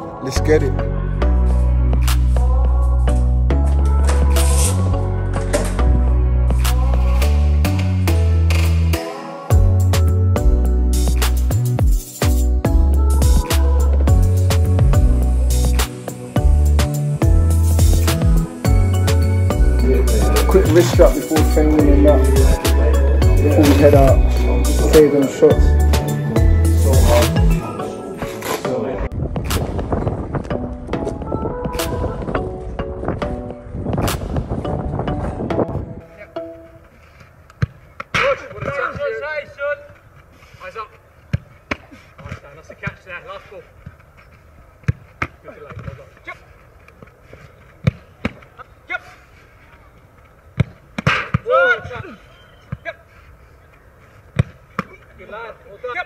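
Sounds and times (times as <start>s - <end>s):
music: 0.0s - 37.3s
footballs kicked and caught: 37.2s - 40.3s, 41.2s - 48.8s, 49.7s - 53.0s, 53.7s - 55.4s
distant shouts: 51.2s - 53.3s.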